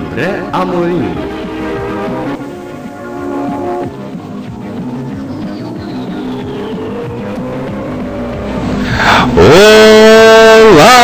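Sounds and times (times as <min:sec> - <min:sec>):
news intro music: 0:00.0 - 0:11.0
loud rising whoosh: 0:06.0 - 0:09.5.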